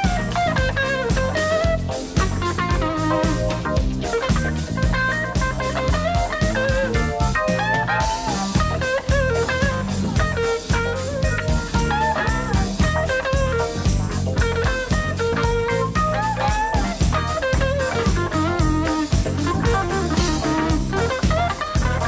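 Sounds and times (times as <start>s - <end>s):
bass line: 0.0s - 22.0s
drum kit groove: 0.0s - 22.0s
electric guitar solo: 0.0s - 22.0s.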